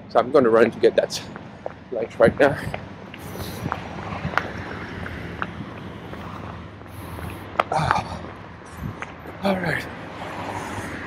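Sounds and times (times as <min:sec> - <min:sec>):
street traffic noise: 0:00.0 - 0:11.0
wind buffeting microphone: 0:00.0 - 0:11.0.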